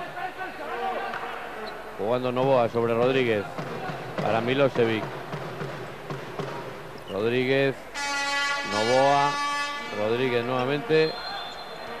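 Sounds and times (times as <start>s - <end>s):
sports hall background: 0.0s - 12.0s.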